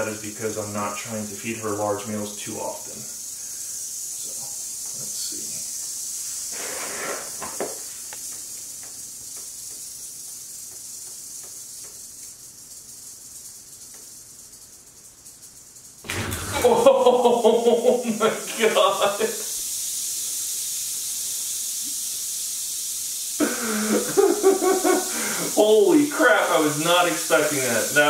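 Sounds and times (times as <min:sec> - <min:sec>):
snake hissing: 0:00.0 - 0:28.0.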